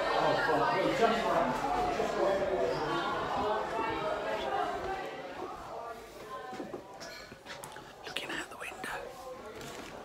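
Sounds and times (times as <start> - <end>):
person whispering: 7.9 - 9.2.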